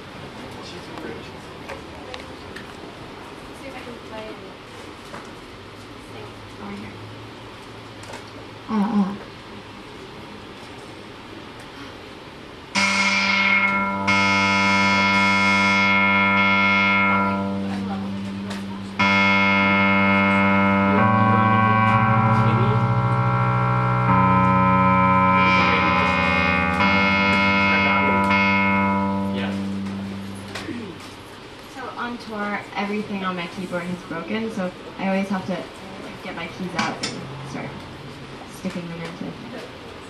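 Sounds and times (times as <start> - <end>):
synthesizer sustained chords: 12.8 - 31.4.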